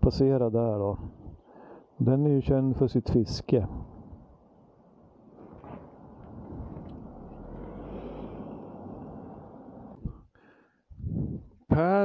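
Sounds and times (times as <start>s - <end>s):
muffled wind rumble: 0.8s - 1.4s, 3.1s - 10.3s, 10.9s - 11.6s
motorcycle road noise: 5.4s - 10.1s.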